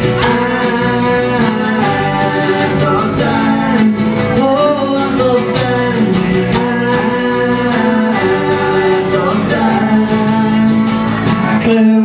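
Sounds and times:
men singing into microphones: 0.0s - 12.0s
strummed acoustic guitars: 0.0s - 12.0s.

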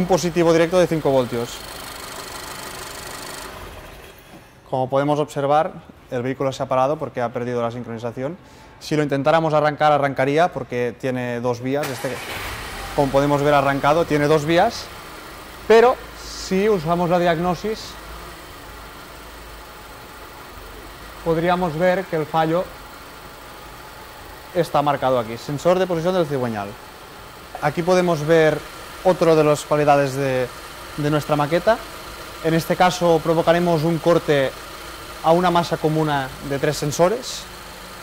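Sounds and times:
car engine idling: 0.0s - 4.5s, 11.9s - 38.0s.

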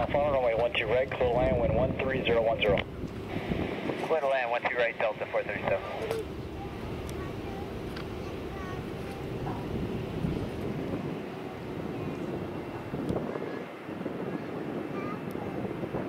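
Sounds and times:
distant jet engine rumble: 0.0s - 16.0s
wind on microphone: 0.0s - 16.0s.

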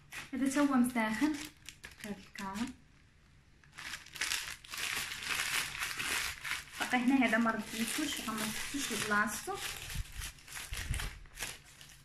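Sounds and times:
paper bag crinkling: 1.0s - 2.7s, 3.7s - 12.0s.

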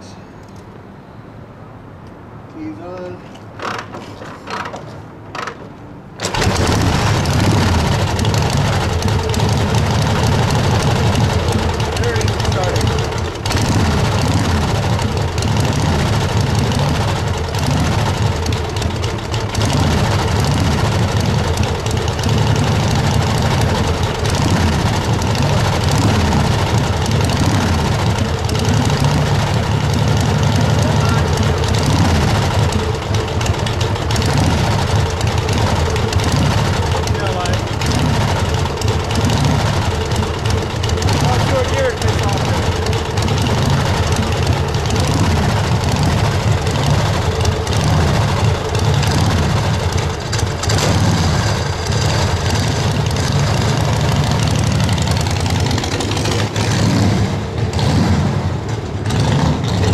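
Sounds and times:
motorcycle kick-started and idling: 3.3s - 59.9s.

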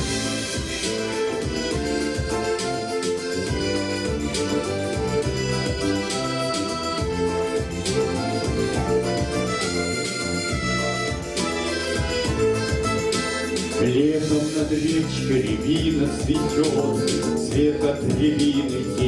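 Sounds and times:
instrumental backing track: 0.0s - 19.0s.

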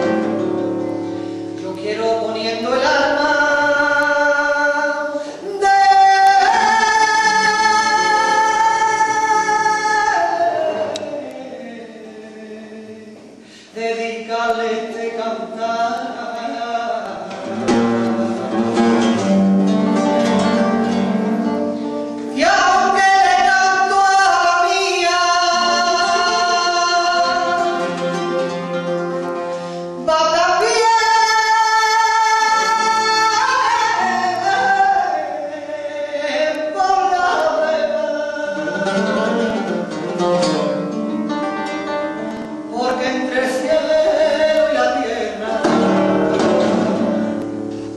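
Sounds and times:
flamenco guitar playing: 0.0s - 47.9s
woman singing flamenco: 0.0s - 47.9s.

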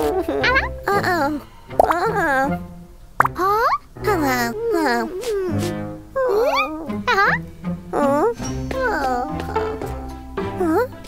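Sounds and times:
light cartoon music with bass: 0.0s - 11.0s.

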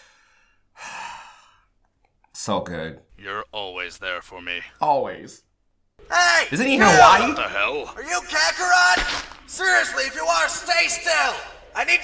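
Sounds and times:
long breathy sigh: 0.0s - 1.7s.

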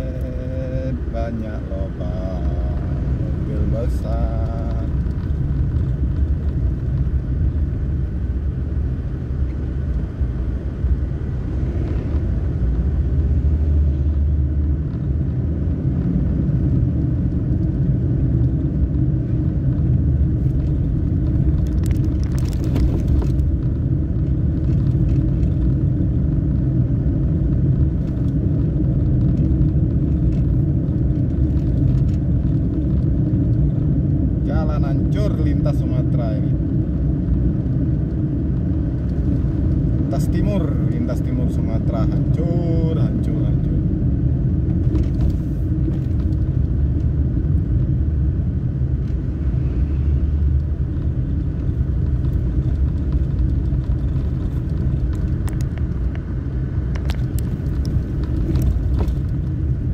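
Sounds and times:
vehicle engine and road rumble: 0.0s - 59.9s.

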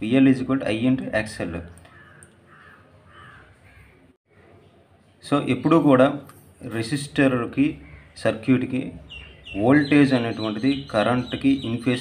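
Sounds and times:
faint bird calls: 1.8s - 4.8s, 7.7s - 8.3s.

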